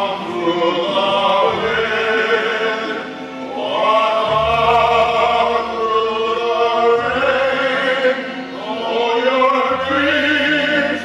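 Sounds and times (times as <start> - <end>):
men singing in harmony: 0.0 - 11.0.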